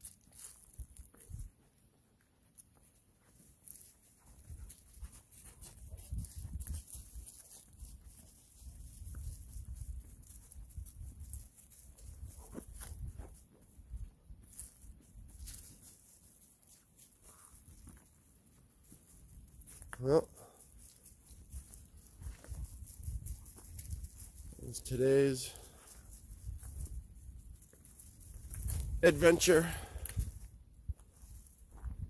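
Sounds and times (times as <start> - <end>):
footsteps crunching dry leaves: 0.0 - 1.6, 2.6 - 32.0.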